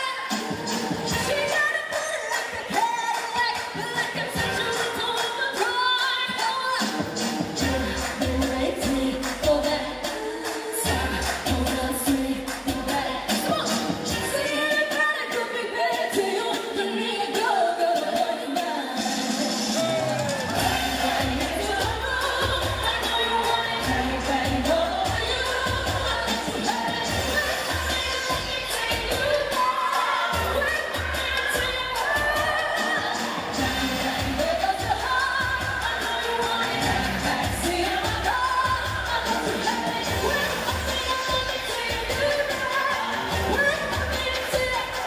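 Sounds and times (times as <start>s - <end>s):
woman singing into microphone: 0.0s - 19.4s, 20.6s - 45.0s
pop backing track: 0.0s - 45.0s.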